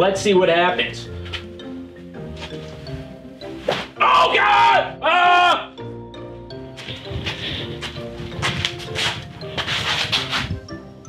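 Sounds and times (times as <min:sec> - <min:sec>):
background music: 0:00.0 - 0:11.0
whip striking a back: 0:03.7 - 0:04.0.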